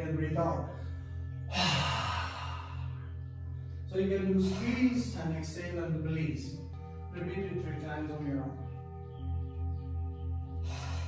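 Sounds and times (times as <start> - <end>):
background music drone: 0.0 - 11.0.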